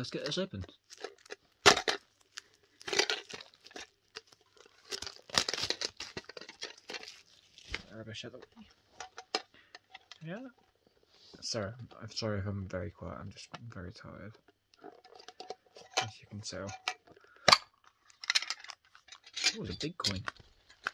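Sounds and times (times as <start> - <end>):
plastic shrink-wrap tearing: 0.0 - 8.0.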